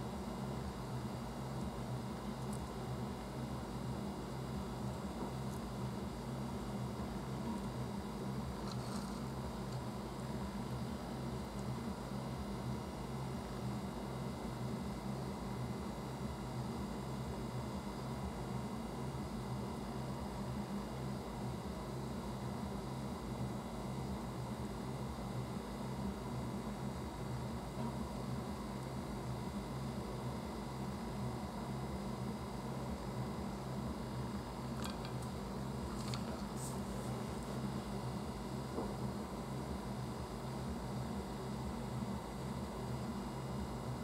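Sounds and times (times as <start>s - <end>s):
low hum with hiss: 0.0s - 44.0s.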